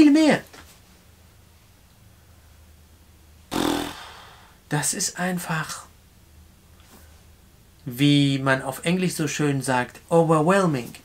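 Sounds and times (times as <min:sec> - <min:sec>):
man blowing air through lips: 0:03.5 - 0:04.6.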